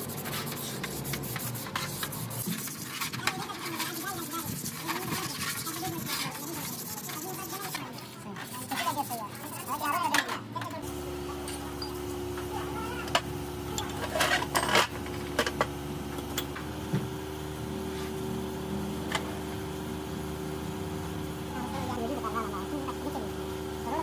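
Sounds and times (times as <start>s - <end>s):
low machine hum: 10.6s - 24.0s.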